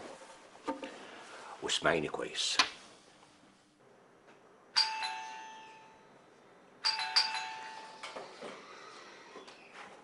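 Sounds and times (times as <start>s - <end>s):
doorbell chime: 4.8s - 6.1s, 6.8s - 8.3s.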